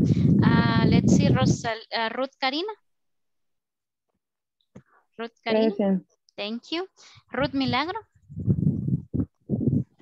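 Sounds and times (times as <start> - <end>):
muffled voice over video call: 5.5 - 6.1.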